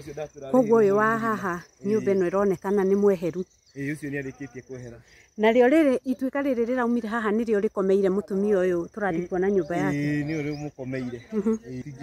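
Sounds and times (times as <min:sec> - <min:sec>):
insect trilling: 0:00.0 - 0:12.0
person talking: 0:00.6 - 0:02.6, 0:09.1 - 0:10.4.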